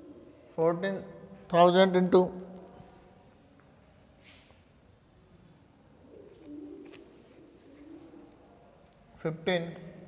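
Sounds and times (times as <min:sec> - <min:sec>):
pigeon cooing: 0:00.0 - 0:00.5, 0:05.9 - 0:08.8.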